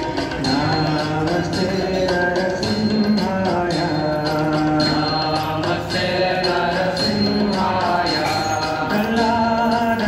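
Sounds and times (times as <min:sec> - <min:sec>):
chant-like devotional singing: 0:00.0 - 0:10.0.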